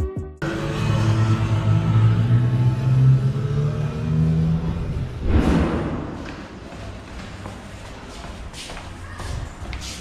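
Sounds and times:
whoosh effect: 5.2s - 6.3s.

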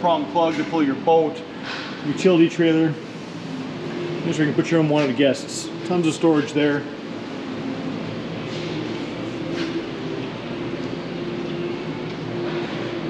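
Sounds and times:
ventilation system humming: 0.0s - 13.0s.

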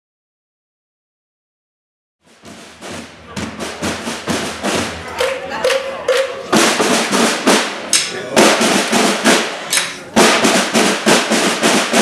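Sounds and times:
marching snare and bass drums: 2.2s - 12.0s.

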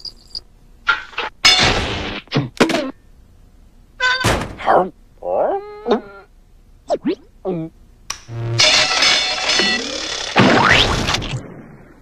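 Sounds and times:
cartoon thunk: 4.2s - 4.7s.

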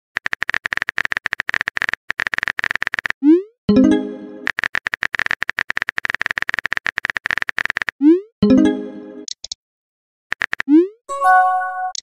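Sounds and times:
quick clicks: 0.2s - 3.2s, 4.4s - 8.0s, 9.2s - 9.6s, 10.3s - 10.9s
bright electronic chime: 11.1s - 12.0s.

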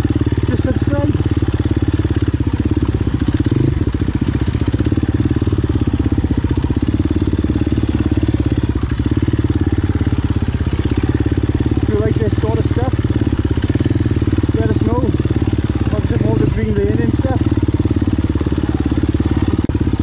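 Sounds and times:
dirt bike engine under throttle: 0.0s - 20.0s.

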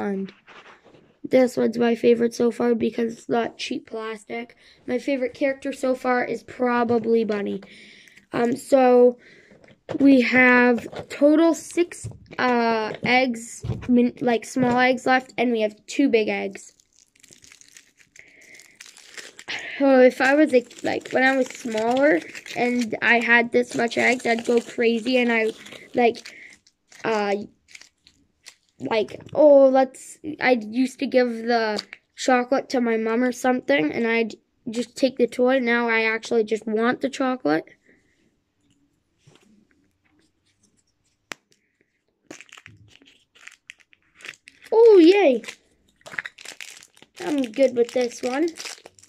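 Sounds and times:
foil wrapper crinkling: 16.5s - 28.9s, 42.2s - 49.0s.

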